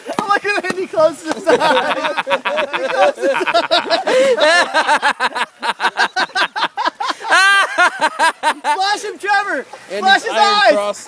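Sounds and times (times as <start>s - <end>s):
person laughing hard: 1.4s - 8.8s.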